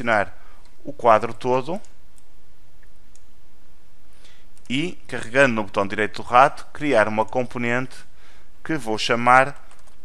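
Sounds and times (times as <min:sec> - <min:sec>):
low background hum: 0:00.0 - 0:10.0
computer mouse clicks: 0:09.6 - 0:10.0.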